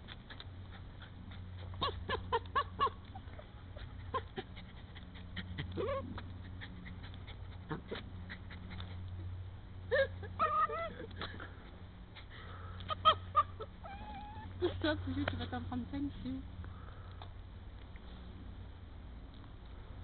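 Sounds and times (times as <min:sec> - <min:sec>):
paws scratching stony soil: 0:00.0 - 0:09.3
dog squealing and whining: 0:05.6 - 0:07.0, 0:10.4 - 0:11.1, 0:12.9 - 0:14.6.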